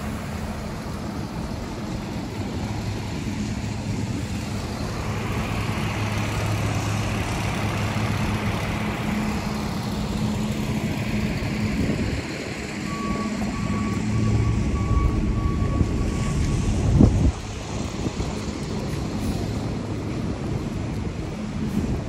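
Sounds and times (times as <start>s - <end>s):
garbage truck engine hum: 0.0s - 22.0s
tyre noise on wet street: 0.0s - 22.0s
reversing alarm beeping: 12.8s - 16.9s.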